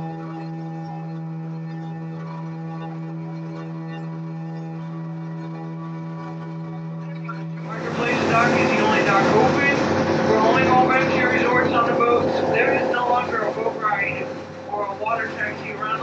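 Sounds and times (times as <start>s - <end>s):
water: 0.0s - 16.0s
boat engine: 5.6s - 16.0s
held music chord: 7.6s - 16.0s
person speaking commentary: 7.6s - 16.0s.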